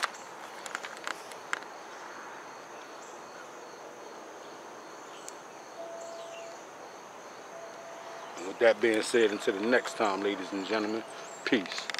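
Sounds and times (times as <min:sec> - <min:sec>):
crickets chirping: 0:00.0 - 0:11.9
faint background hiss: 0:00.0 - 0:11.9
brief steady tone: 0:05.7 - 0:06.6, 0:07.5 - 0:08.6.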